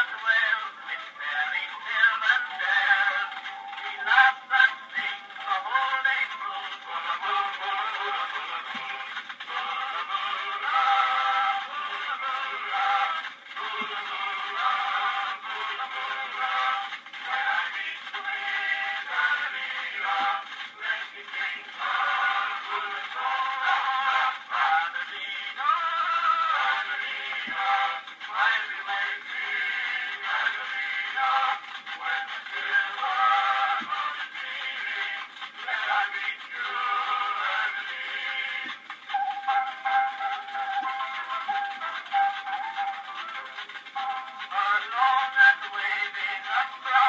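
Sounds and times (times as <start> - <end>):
tinny phonograph recording of song: 0.0 - 47.0.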